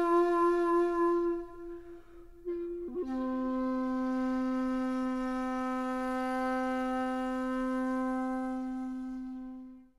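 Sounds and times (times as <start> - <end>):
wind instrument long note: 0.0 - 9.9.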